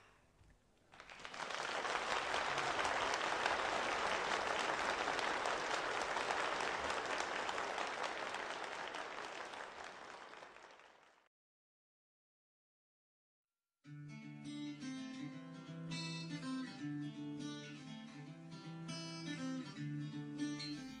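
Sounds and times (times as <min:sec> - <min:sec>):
crowd applauding: 0:00.9 - 0:11.3.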